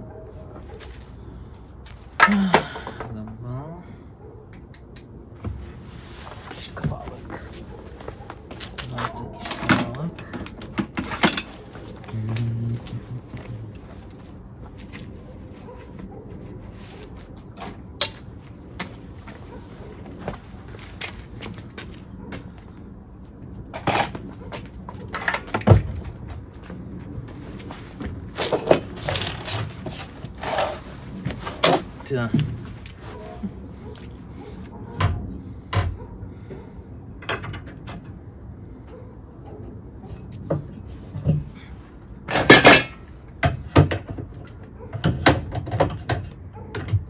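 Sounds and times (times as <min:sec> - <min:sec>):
tools and metal clattering: 0:04.4 - 0:22.6, 0:23.6 - 0:36.6, 0:37.2 - 0:38.3, 0:38.9 - 0:47.0.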